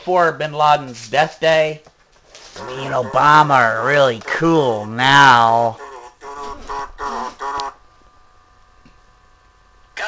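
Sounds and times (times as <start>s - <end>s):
man speaking: 0.0s - 1.9s, 2.6s - 5.8s
faint steady hum: 0.0s - 10.0s.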